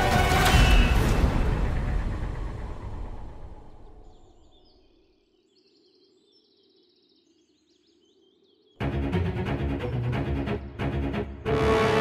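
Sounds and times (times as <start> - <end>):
dramatic background music: 0.0 - 3.8, 8.8 - 12.0.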